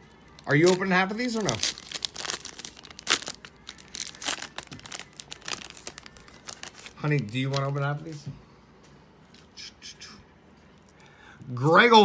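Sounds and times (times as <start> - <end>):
cards and foil wrappers rustling: 0.1 - 8.3.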